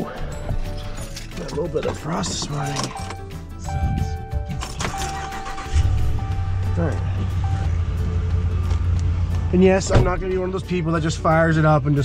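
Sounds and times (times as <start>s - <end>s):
truck engine idling: 3.4s - 11.6s.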